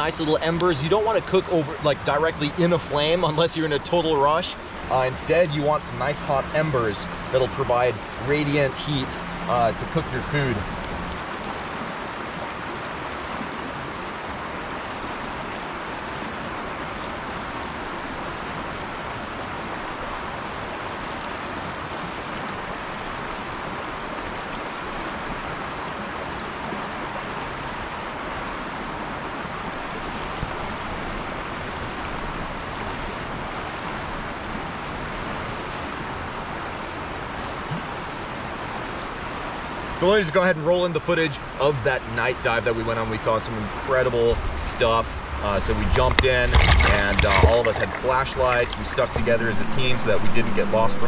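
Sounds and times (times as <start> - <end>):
campfire hissing: 0.0 - 11.2.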